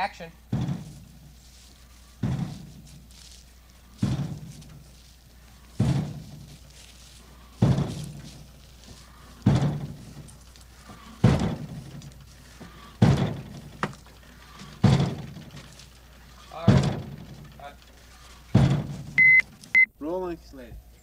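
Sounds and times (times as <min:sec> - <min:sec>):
heavy banging thuds: 0:00.0 - 0:19.7.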